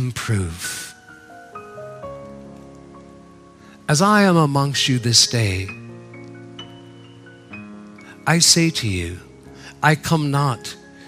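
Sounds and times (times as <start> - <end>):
person speaking: 0.0 - 1.0, 3.8 - 5.9, 8.1 - 10.8
soft sustained music chord: 0.0 - 11.0.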